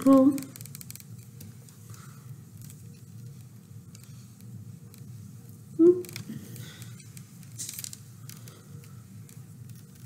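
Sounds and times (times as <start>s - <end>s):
low steady hum: 0.0s - 10.0s
thread rustling and scraping: 0.5s - 5.6s, 6.2s - 10.0s.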